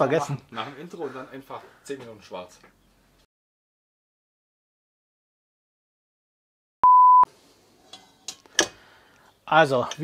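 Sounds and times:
high test-tone beep: 0:06.8 - 0:07.3.

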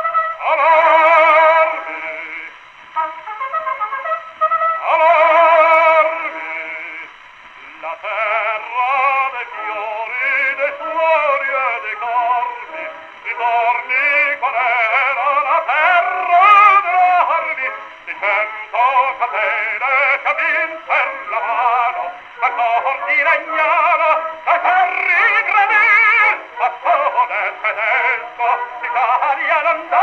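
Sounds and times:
musical accompaniment: 0:00.0 - 0:30.0
operatic tenor singing with vibrato: 0:00.0 - 0:30.0.

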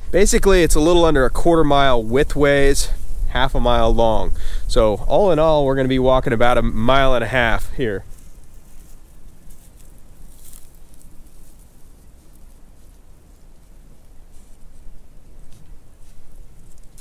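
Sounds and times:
steady low rumble: 0:00.0 - 0:17.0
footsteps through dry grass and snow: 0:01.4 - 0:04.4, 0:06.4 - 0:17.0.

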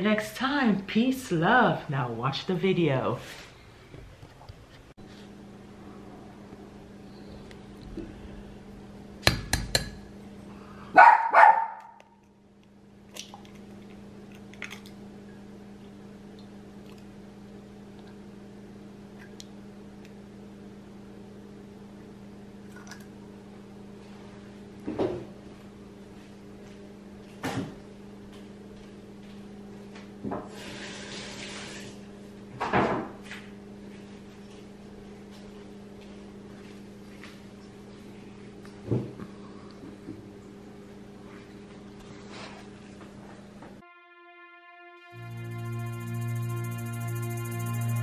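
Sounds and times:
dog barking: 0:11.0 - 0:12.0
low hum: 0:43.8 - 0:48.0.

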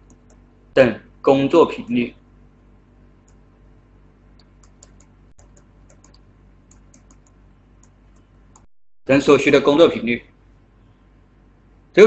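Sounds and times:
low steady hum: 0:00.0 - 0:12.0
small clicks of input device: 0:04.4 - 0:08.7.

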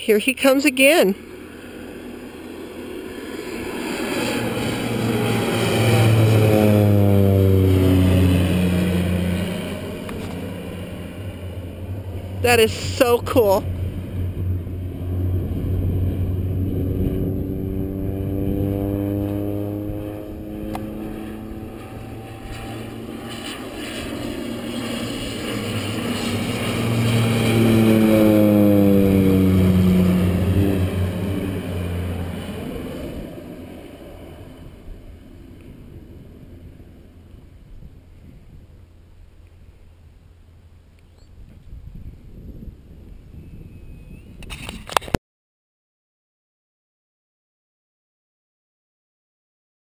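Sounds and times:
airplane passing low overhead: 0:00.0 - 0:45.2.

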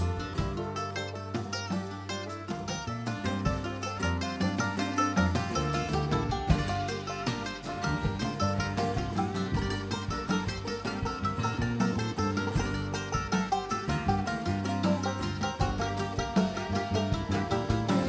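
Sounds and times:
bluegrass band playing: 0:00.0 - 0:18.0
mandolin picking fast runs: 0:00.0 - 0:18.0
walking bass: 0:00.0 - 0:18.0.

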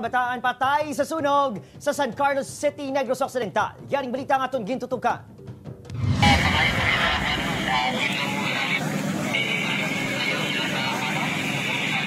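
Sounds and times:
noisy fire din: 0:05.9 - 0:11.8
people's voices: 0:06.1 - 0:12.0.

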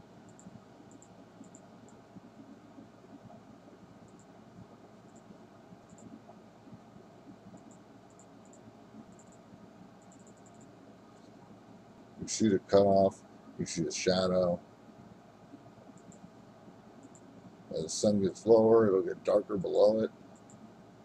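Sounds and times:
microphone hiss: 0:00.0 - 0:21.0
light ticks: 0:00.2 - 0:02.4, 0:07.5 - 0:09.4, 0:16.0 - 0:16.3, 0:17.0 - 0:17.3, 0:20.3 - 0:20.6.

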